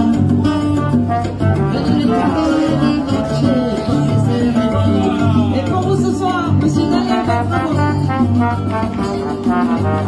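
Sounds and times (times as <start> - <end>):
guitar: 0.0 - 10.0
live band playing latin tune: 0.0 - 10.0
repeating bass line: 0.0 - 10.0.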